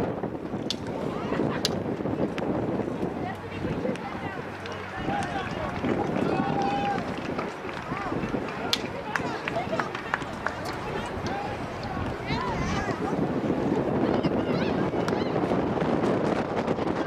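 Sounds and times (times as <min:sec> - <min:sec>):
distant voices shouting: 0:03.1 - 0:15.6.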